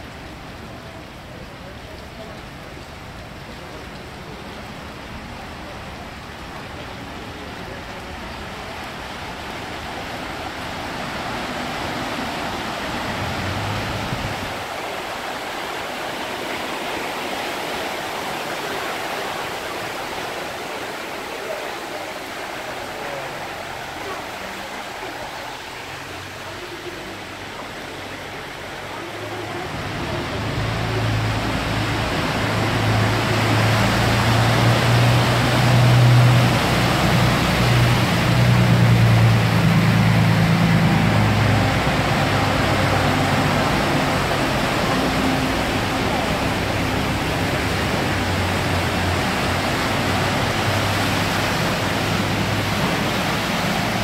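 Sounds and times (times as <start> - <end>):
floodwater rushing: 0.0 - 54.0
water washing aside by wheels: 0.0 - 54.0
bus engine humming: 22.8 - 54.0.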